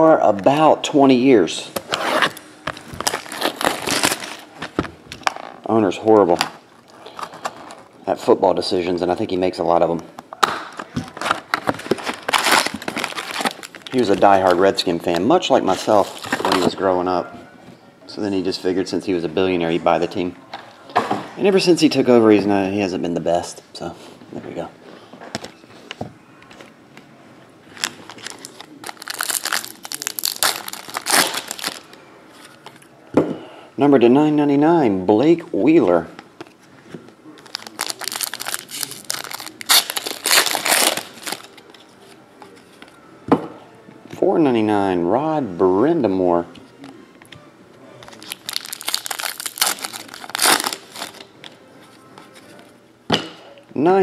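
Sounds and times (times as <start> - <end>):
foil wrapper tearing and crinkling: 2.2 - 4.5, 11.2 - 14.1, 27.8 - 32.0, 37.4 - 41.6, 48.1 - 51.3.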